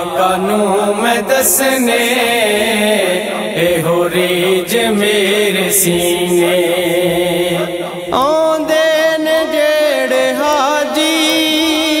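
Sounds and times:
man singing long held note: 0:00.0 - 0:12.0.

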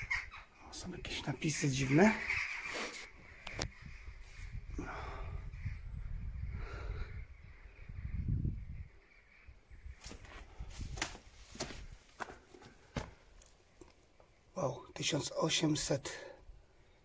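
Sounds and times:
footsteps on stone and rubble: 0:10.0 - 0:13.6.

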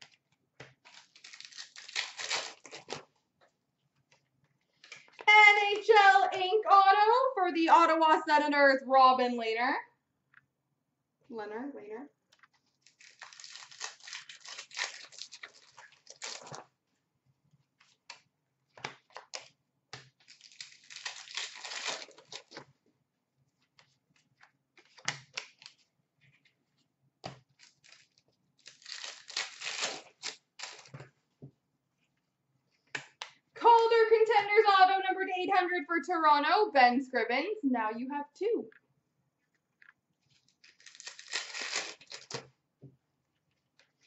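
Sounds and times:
card pack wrappers tearing: 0:00.7 - 0:03.1, 0:12.8 - 0:16.7, 0:20.1 - 0:22.7, 0:27.5 - 0:31.0, 0:40.3 - 0:42.5.

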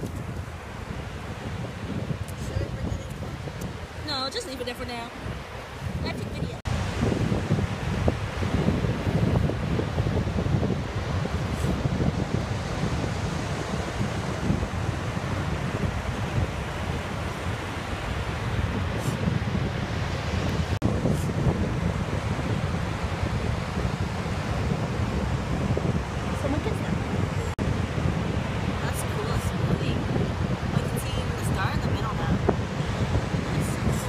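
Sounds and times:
surf washing on beach: 0:00.0 - 0:34.0
wind buffeting microphone: 0:00.0 - 0:34.0.

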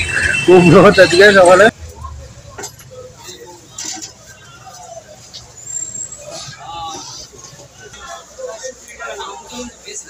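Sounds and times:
faint voices and chatter: 0:00.0 - 0:10.0.

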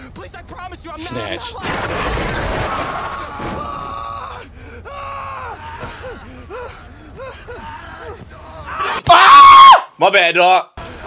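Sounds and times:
loud long scream: 0:02.6 - 0:04.4, 0:08.7 - 0:09.9.

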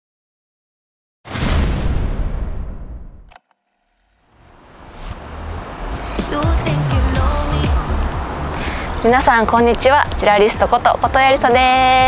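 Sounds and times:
rushing noise: 0:04.0 - 0:10.7.

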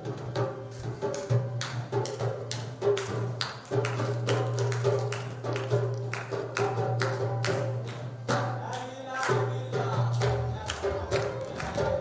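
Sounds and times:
hand percussion strikes: 0:00.0 - 0:12.0.

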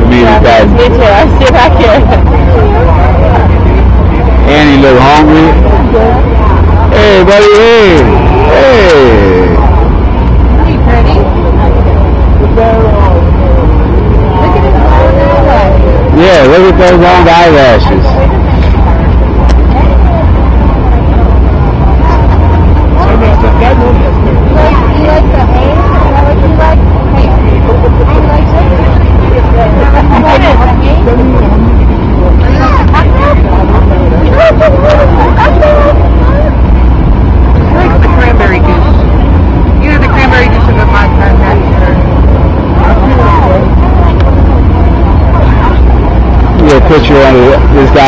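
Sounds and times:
loud steady low rumble: 0:00.0 - 0:48.0
people talking: 0:00.0 - 0:48.0.

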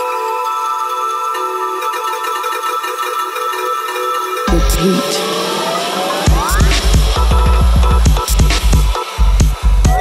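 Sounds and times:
steady melodic synth tones: 0:02.6 - 0:07.5
electronic breaks track: 0:04.4 - 0:10.0.

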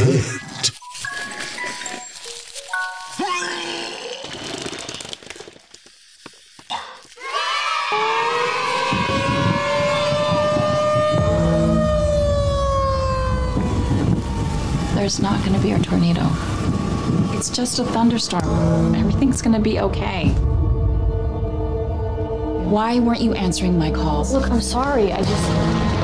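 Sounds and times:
tornado warning siren: 0:07.9 - 0:20.9
low storm rumble: 0:08.8 - 0:26.0.

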